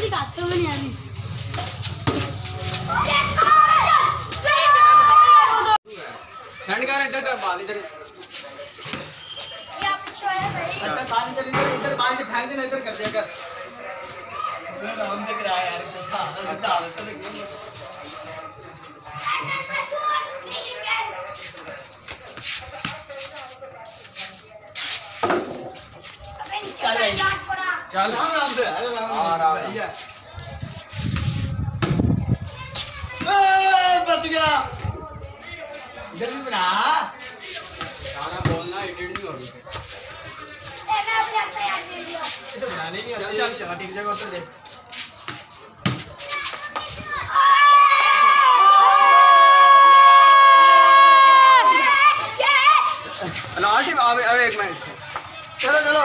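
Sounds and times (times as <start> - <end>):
children calling and chattering: 0.0 - 56.0
children's voices: 2.7 - 5.8, 19.1 - 21.3, 32.2 - 33.4, 40.8 - 42.5, 46.2 - 48.6, 51.6 - 53.2.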